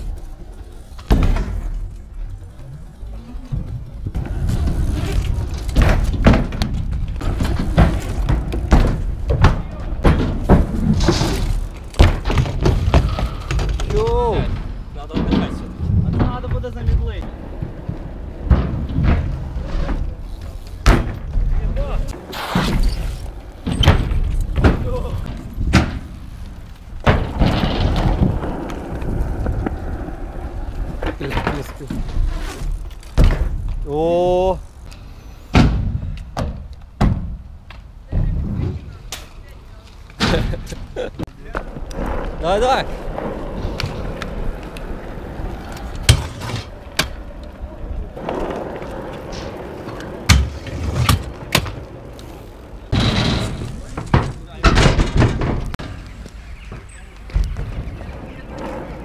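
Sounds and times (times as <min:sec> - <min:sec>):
wheels rumbling over asphalt: 0:00.0 - 0:35.0, 0:39.6 - 0:59.0
boards and bikes landing: 0:00.0 - 0:59.0.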